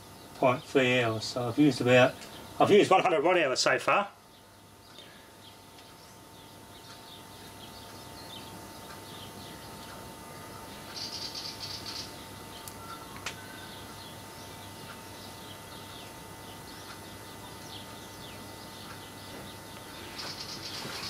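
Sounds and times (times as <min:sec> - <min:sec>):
faint steady hum: 0:00.0 - 0:21.0
high bird chirps: 0:04.8 - 0:21.0
sharp ticks: 0:14.8 - 0:18.0.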